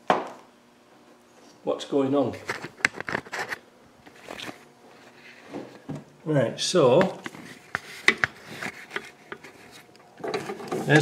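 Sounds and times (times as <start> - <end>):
rubbing and scraping: 2.4 - 5.7, 7.3 - 11.0.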